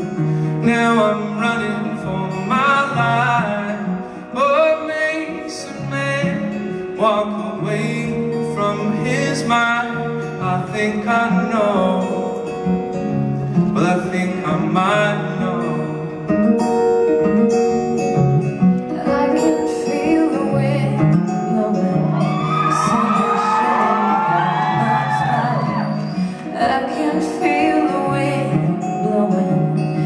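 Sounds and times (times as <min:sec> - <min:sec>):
person singing: 0:00.0 - 0:12.8, 0:13.6 - 0:16.2, 0:18.8 - 0:30.0
acoustic guitar strumming: 0:00.0 - 0:30.0.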